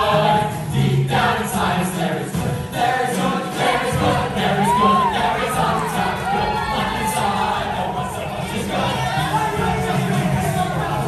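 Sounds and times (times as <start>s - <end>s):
men singing together: 0.0s - 11.0s.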